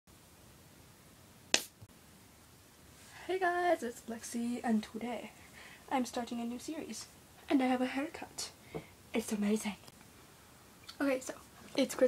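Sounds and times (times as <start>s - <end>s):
faint room hiss: 0.1s - 12.0s
sharp snap: 1.5s - 1.9s.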